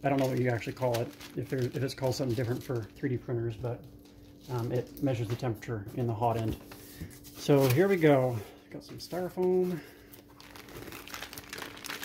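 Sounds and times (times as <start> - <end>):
plastic wrapping crinkling: 0.0 - 3.2, 9.4 - 12.0.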